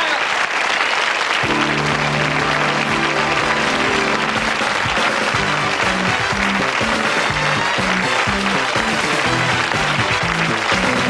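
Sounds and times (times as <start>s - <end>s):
audience applauding: 0.0s - 11.0s
theme music with low held notes: 1.4s - 11.0s.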